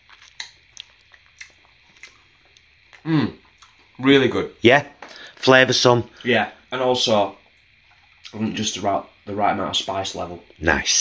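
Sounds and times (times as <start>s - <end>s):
person chewing: 0.0s - 4.0s.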